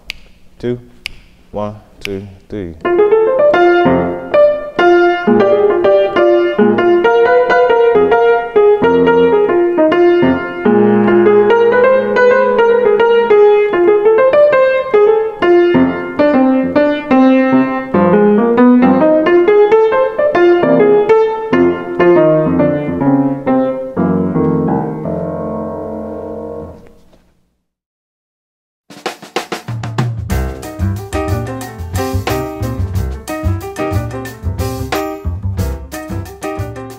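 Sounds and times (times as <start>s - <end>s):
solo jazz blues piano: 2.8s - 27.1s, 30.2s - 36.9s.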